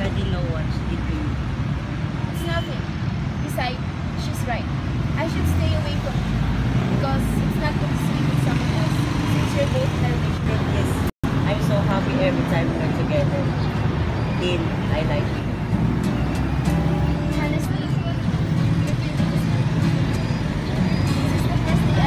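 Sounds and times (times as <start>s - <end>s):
road traffic rumble: 0.0s - 22.0s
indistinct voices: 5.1s - 22.0s.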